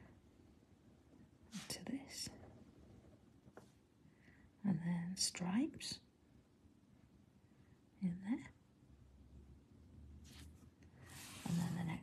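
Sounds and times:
woman whispering: 0:01.6 - 0:02.4, 0:08.0 - 0:08.6, 0:11.2 - 0:12.0.

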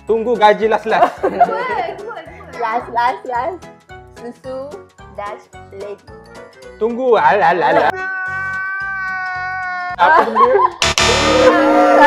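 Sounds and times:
long wailing note: 0:10.8 - 0:12.0.

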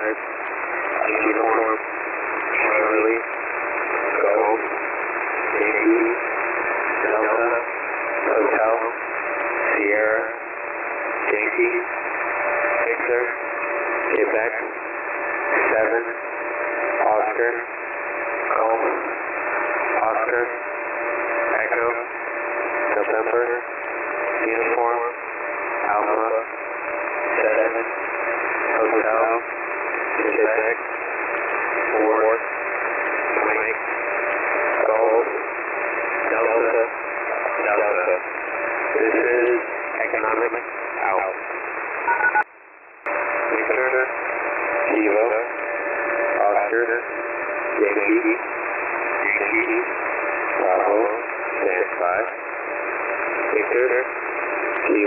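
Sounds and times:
person speaking over radio: 0:00.0 - 0:00.2, 0:00.8 - 0:01.8, 0:02.4 - 0:03.3, 0:03.9 - 0:04.8, 0:05.4 - 0:06.2, 0:06.9 - 0:09.0, 0:09.6 - 0:10.4, 0:11.2 - 0:11.9, 0:12.6 - 0:13.4, 0:14.0 - 0:14.8, 0:15.4 - 0:16.2, 0:16.9 - 0:17.7, 0:18.4 - 0:19.2, 0:19.8 - 0:20.6, 0:21.4 - 0:22.1, 0:22.9 - 0:23.7, 0:24.3 - 0:25.2, 0:25.8 - 0:26.6, 0:27.2 - 0:27.9, 0:28.6 - 0:30.8, 0:31.8 - 0:32.4, 0:33.2 - 0:33.8, 0:34.7 - 0:35.5, 0:36.2 - 0:38.3, 0:38.9 - 0:41.4, 0:43.4 - 0:44.2, 0:44.8 - 0:45.6, 0:46.4 - 0:48.4, 0:49.1 - 0:52.4, 0:53.4 - 0:55.0
radio hiss and static: 0:00.0 - 0:55.0.

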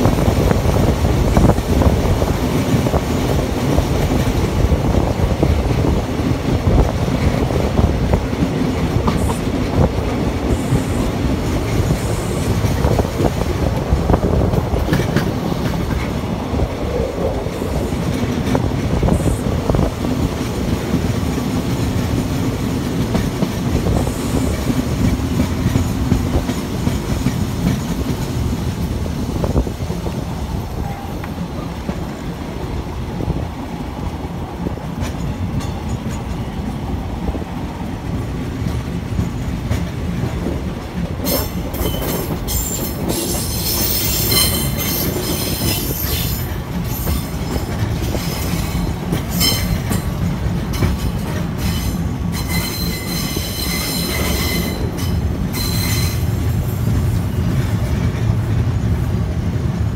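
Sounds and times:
train rumbling along track: 0:00.0 - 0:59.9
metallic wheel squeal: 0:41.3 - 0:47.6, 0:51.7 - 0:56.2.

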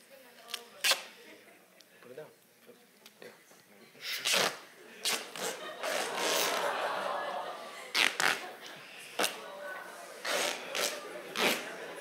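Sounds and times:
sharp tape rips: 0:00.4 - 0:01.2, 0:04.1 - 0:06.6, 0:07.9 - 0:08.5, 0:09.2 - 0:09.4, 0:10.2 - 0:11.7
tape pulled off a roll: 0:00.4 - 0:01.2, 0:04.1 - 0:06.7, 0:07.9 - 0:08.5, 0:10.2 - 0:11.7.

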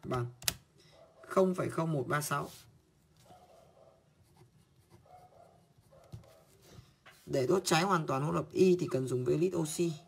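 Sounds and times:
pen scratching on paper: 0:04.2 - 0:07.3.

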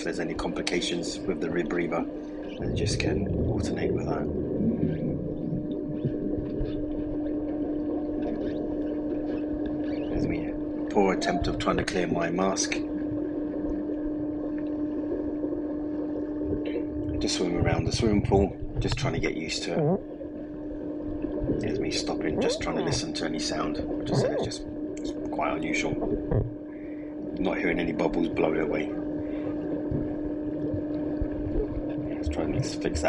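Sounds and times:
steady low hum: 0:00.0 - 0:33.0
underwater water rumble: 0:00.0 - 0:33.0.

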